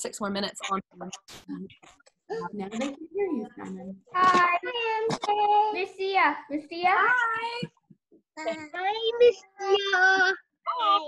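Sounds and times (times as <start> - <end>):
children calling sing-song greetings: 8.4 - 11.0.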